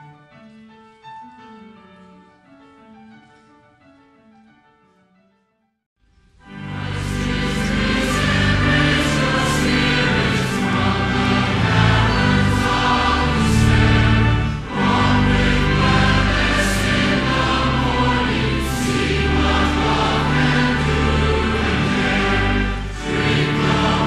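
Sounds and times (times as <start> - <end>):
low held accompaniment notes: 6.3 - 24.0
congregation and choir singing a hymn: 6.5 - 24.0.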